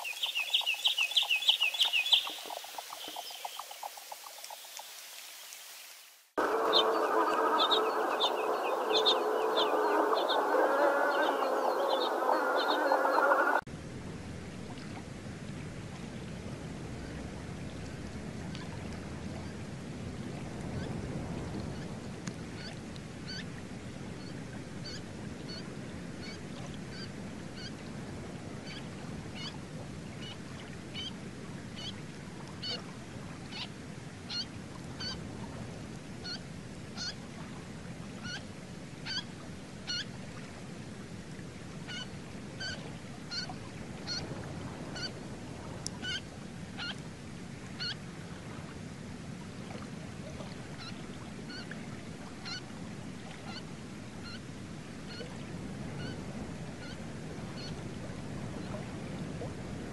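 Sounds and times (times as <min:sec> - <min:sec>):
snipe calls: 0:06.4 - 0:13.6.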